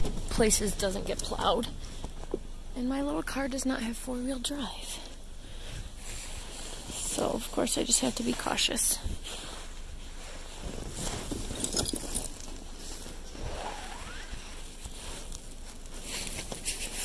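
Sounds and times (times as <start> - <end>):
cardboard rustling and crunching: 14.6 - 17.0.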